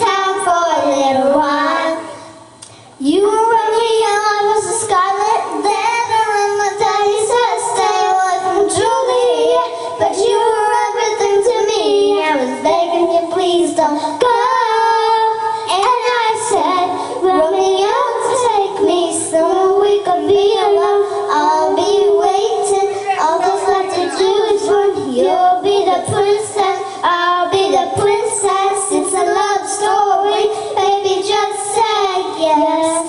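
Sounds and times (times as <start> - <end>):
girls singing into microphones: 0.0 - 33.0.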